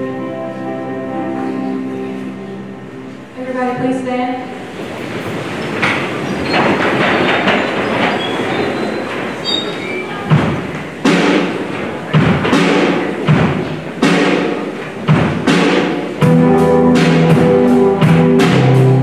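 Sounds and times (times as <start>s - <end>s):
keyboard and guitar: 0.0s - 4.0s, 15.5s - 19.0s
clatter and shuffle of seats: 4.8s - 16.3s
heavy drum beats: 10.1s - 19.0s.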